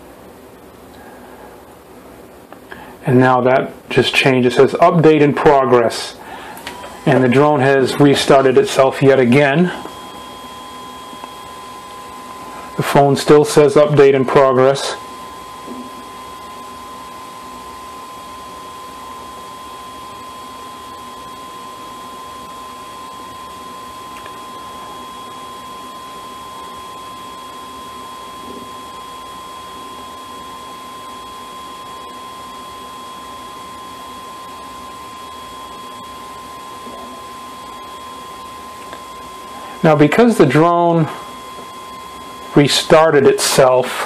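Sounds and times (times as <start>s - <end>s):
cooling fan whining: 0.0s - 44.0s.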